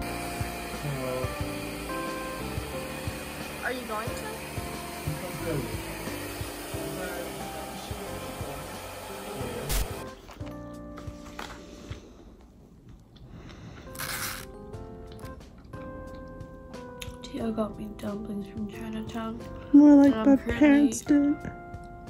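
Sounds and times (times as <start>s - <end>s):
noisy burst: 0.0s - 10.0s
hair dryer blowing: 0.0s - 10.1s
background music: 0.0s - 12.4s, 13.3s - 22.0s.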